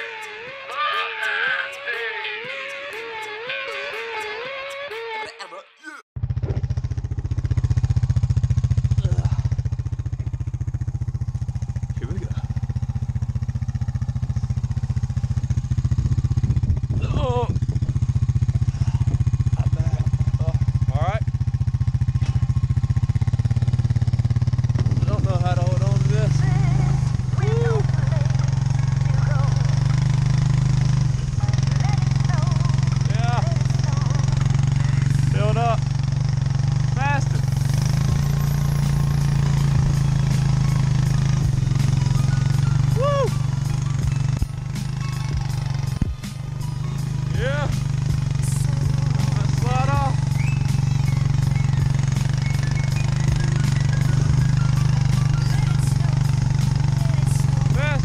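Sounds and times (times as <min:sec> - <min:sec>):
person calling out: 0:00.0 - 0:02.8, 0:43.0 - 0:43.4
atv engine running: 0:00.0 - 0:05.0, 0:06.2 - 0:58.0.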